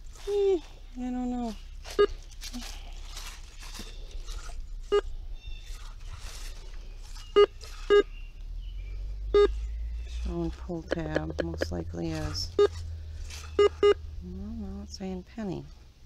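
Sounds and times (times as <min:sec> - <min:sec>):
faint rustling: 0:00.0 - 0:14.4
metal detector beeps: 0:01.9 - 0:02.2, 0:04.8 - 0:05.1, 0:07.2 - 0:08.2, 0:09.3 - 0:09.7, 0:12.5 - 0:12.8, 0:13.5 - 0:14.0.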